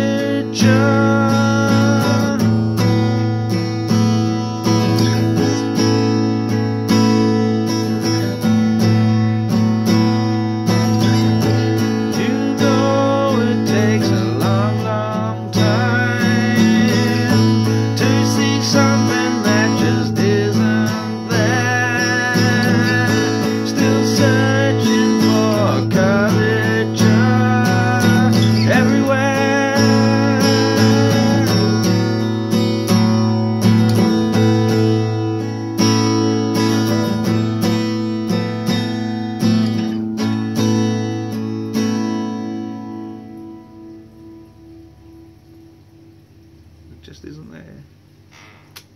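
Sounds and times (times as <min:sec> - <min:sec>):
man singing: 0:00.0 - 0:03.0, 0:04.8 - 0:06.0, 0:11.1 - 0:33.0
acoustic guitar strumming: 0:00.0 - 0:48.9.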